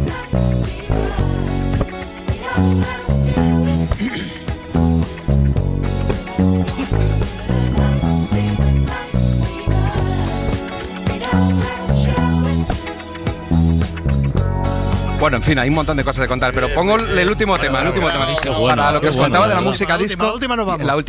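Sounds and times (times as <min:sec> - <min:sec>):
plucked electric bass line: 0:00.0 - 0:18.0
drum beat: 0:00.8 - 0:07.8.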